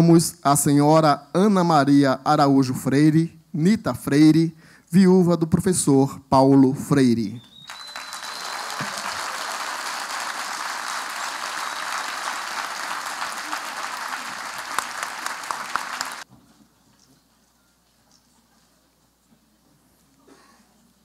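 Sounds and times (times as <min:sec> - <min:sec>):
audience applauding: 0:07.6 - 0:16.3.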